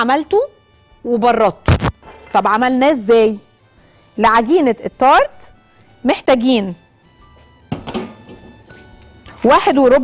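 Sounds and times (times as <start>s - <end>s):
quiet background music: 0.0s - 10.0s
metal pan set down on counter: 7.7s - 8.5s.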